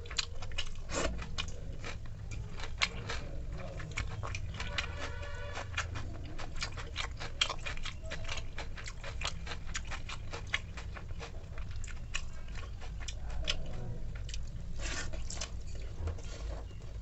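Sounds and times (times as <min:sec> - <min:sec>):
wet chewing and lip-smacking: 0:00.0 - 0:16.0.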